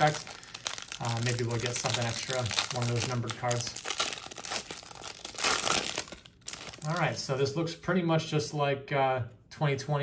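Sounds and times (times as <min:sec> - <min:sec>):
plastic wrapper crinkling: 0:00.0 - 0:07.2.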